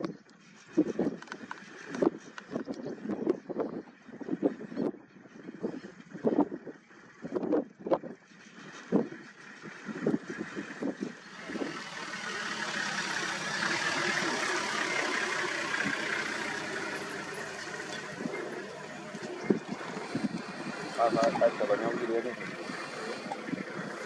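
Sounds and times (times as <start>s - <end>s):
vehicle passing: 11.1s - 24.0s.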